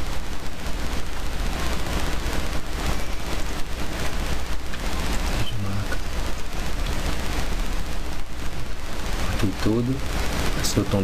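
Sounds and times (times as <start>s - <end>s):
loud steady rushing noise: 0.0s - 11.0s
low hum: 0.0s - 11.0s.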